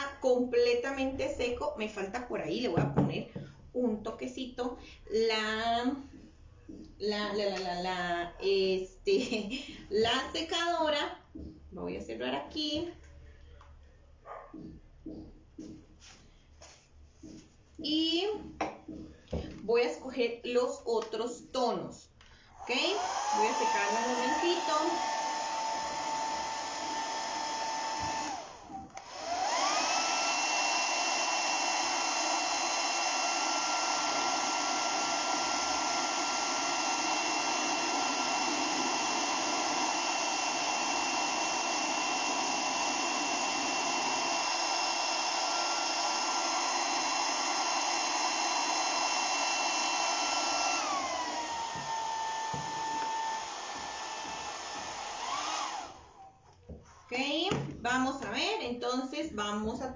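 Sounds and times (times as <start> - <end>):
hair dryer blowing: 0.0 - 3.5, 22.6 - 56.4.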